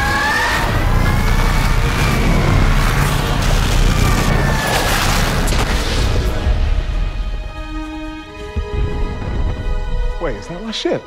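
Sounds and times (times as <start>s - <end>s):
spaceship engine whine: 0.0s - 7.4s
low rumble: 0.7s - 10.6s.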